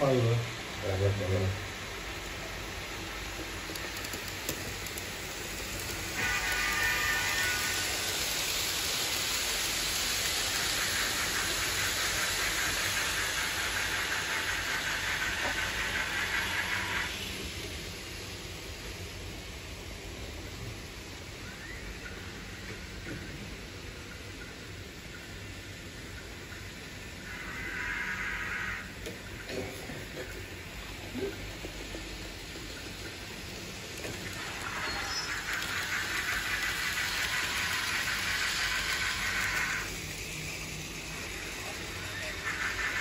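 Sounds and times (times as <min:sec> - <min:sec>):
wheels clicking over rails: 0:02.2 - 0:17.7, 0:29.0 - 0:43.0.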